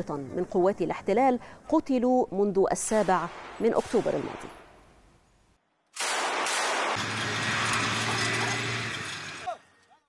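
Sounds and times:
tank engine droning: 7.0s - 9.9s.

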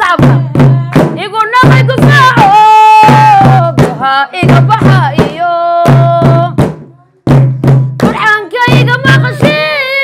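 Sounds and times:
woman singing in high voice: 0.0s - 6.6s, 8.0s - 10.0s
drum beating: 0.0s - 10.0s.

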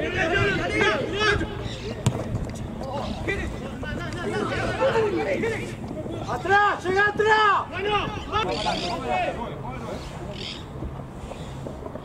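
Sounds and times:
distant voices: 0.0s - 12.0s
football kicked thud: 2.0s - 2.4s.

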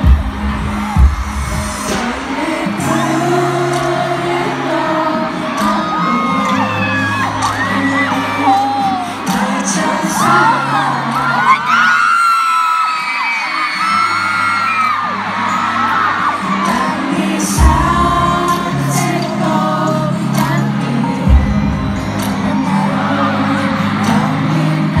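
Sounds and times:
man singing pop ballad: 0.0s - 15.3s, 15.9s - 25.0s
fans screaming and cheering: 0.0s - 25.0s.

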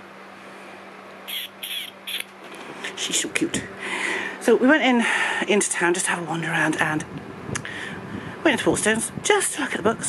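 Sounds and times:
person making kissing squeaks: 1.3s - 2.3s.

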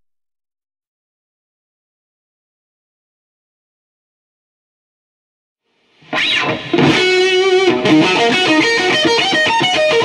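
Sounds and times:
electric guitar playing: 6.0s - 10.0s.

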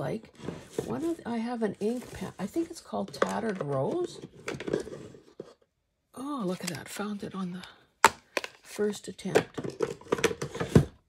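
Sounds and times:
plastic cases clicking and knocking: 9.2s - 11.0s.

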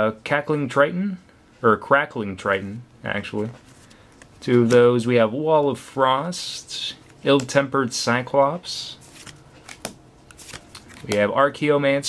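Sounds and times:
trading cards rustling: 3.4s - 5.0s, 8.8s - 11.3s.

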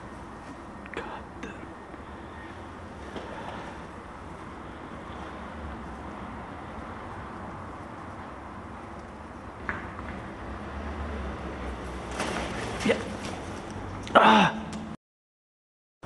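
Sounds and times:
low outdoor rumble: 0.0s - 14.0s.

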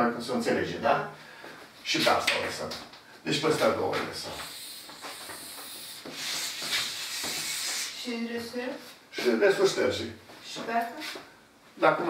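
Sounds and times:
cloth wiping a blackboard: 4.2s - 8.2s.

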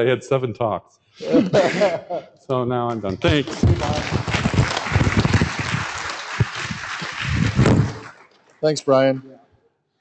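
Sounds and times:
audience applauding: 2.9s - 9.0s.

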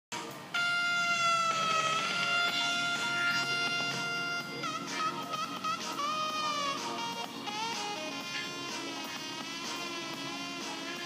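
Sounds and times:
long held instrumental note: 0.5s - 11.0s.

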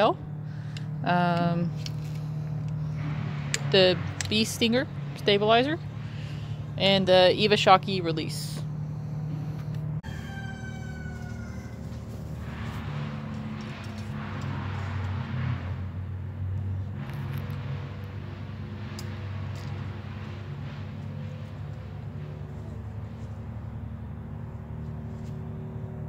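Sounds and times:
low motor hum: 0.0s - 26.0s.

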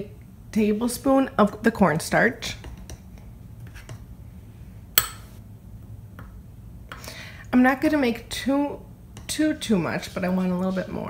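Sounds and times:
metal spoon clinking glass bowl: 5.0s - 5.3s.

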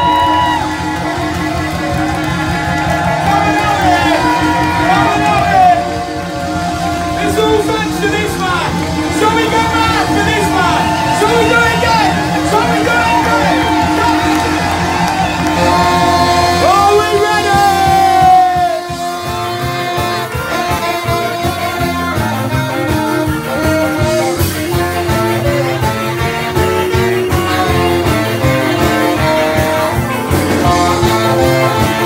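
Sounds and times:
live band playing: 0.0s - 32.0s.

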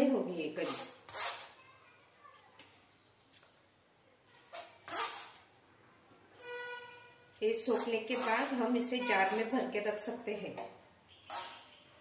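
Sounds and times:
steel spoon scraping on metal: 0.6s - 1.6s, 7.5s - 9.6s, 11.2s - 11.8s.

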